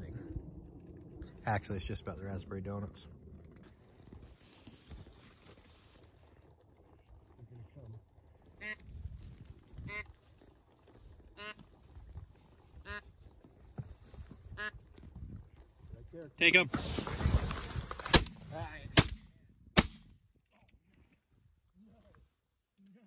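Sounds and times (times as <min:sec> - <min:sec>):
low wind rumble: 0:00.0 - 0:20.4.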